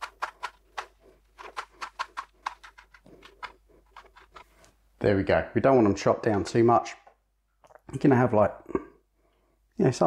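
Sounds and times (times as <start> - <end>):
knife chopping on plastic board: 0.0 - 3.6.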